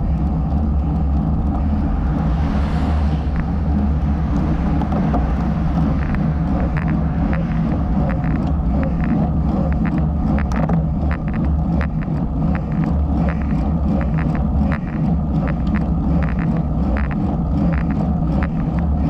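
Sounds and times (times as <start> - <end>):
road traffic passing: 0.0 - 19.0
wind rumble on microphone: 0.0 - 19.0.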